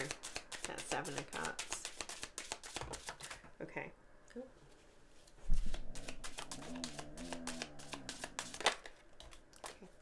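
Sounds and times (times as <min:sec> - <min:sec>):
cards clicking and rustling: 0:05.6 - 0:09.8.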